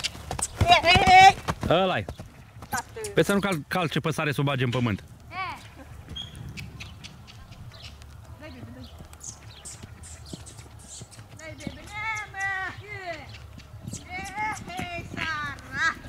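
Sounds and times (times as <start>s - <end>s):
hooves thudding on dirt: 0.0s - 16.0s.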